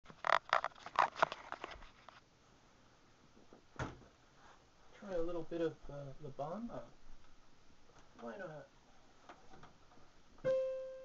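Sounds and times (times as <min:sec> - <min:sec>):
camera handling rustles and knocks: 0:00.1 - 0:02.2.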